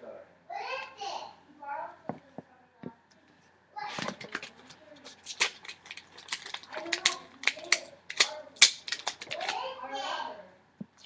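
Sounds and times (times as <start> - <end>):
plastic packaging crackling: 3.9 - 9.6.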